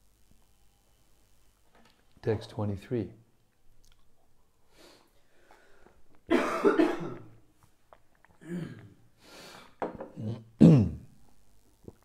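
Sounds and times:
person coughing: 6.3s - 7.3s, 8.4s - 8.9s, 10.2s - 11.1s.

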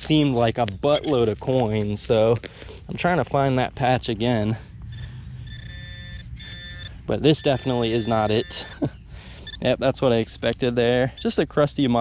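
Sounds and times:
pinpointer electronic buzz-tone: 4.8s - 9.7s.

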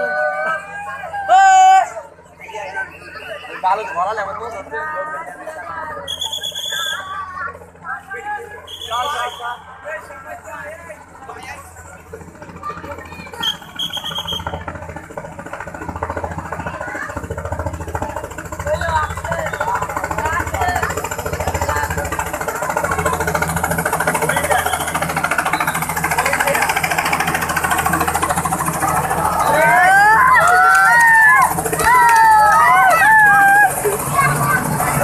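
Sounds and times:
crowd shouting: 0.0s - 10.1s, 18.7s - 35.0s
helicopter rotor beat: 0.0s - 35.0s.

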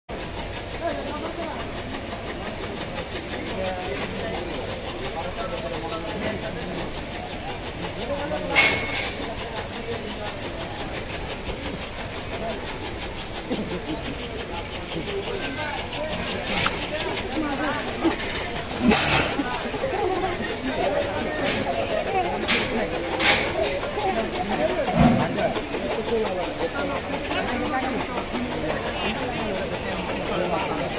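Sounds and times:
people talking in background: 0.1s - 30.9s
repeating clatter: 0.1s - 30.9s
indistinct voices: 0.2s - 30.9s.

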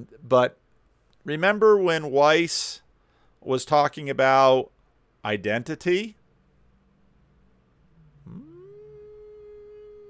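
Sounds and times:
man humming: 7.9s - 10.0s.

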